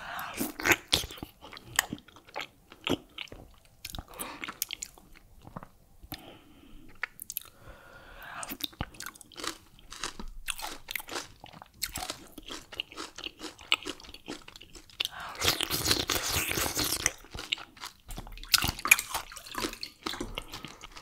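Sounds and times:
wet sticky chewing: 8.5 - 21.0.

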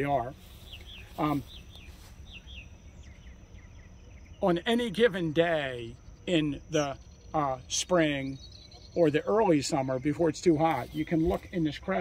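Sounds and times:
birds chirping faintly: 0.0 - 12.0
low outdoor rumble: 0.0 - 12.0.

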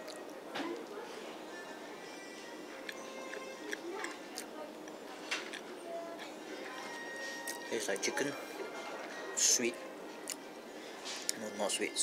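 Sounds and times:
background music: 0.0 - 12.0
murmur of voices: 0.0 - 12.0.

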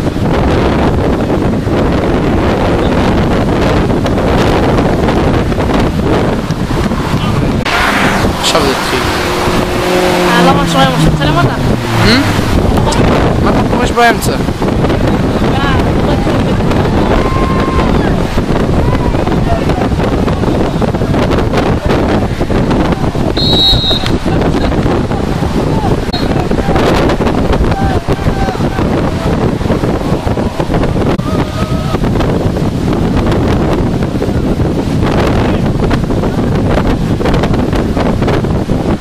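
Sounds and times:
wind rumbling on microphone: 0.0 - 39.0
voices calling out: 21.6 - 32.1.

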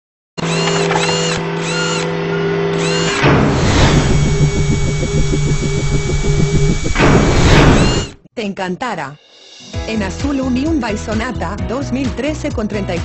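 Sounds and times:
mechanical whirring hum: 0.4 - 8.2
whoosh: 3.2 - 8.2
fast pulsing beat: 3.9 - 8.2.

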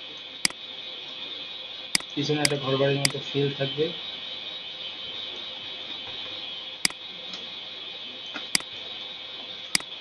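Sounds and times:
steady high hiss: 0.0 - 10.0.

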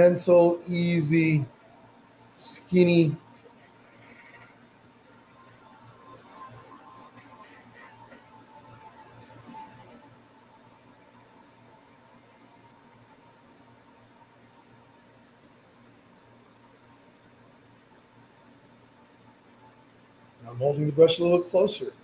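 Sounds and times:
faint hum and hiss: 0.0 - 22.0.

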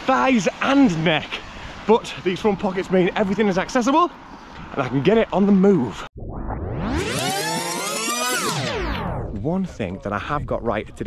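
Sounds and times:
electronic synth sweep: 6.2 - 9.4.

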